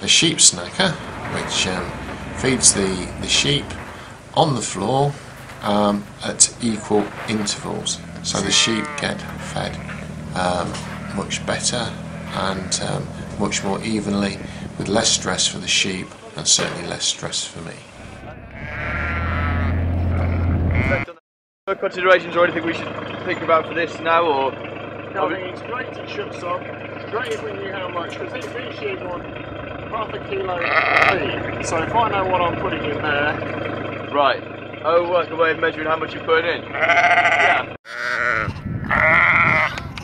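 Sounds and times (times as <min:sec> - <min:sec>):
steady low hum: 0:00.0 - 0:18.5
sheep bleating: 0:07.2 - 0:11.3, 0:11.9 - 0:13.3, 0:18.3 - 0:21.2, 0:30.6 - 0:31.3, 0:36.7 - 0:39.9.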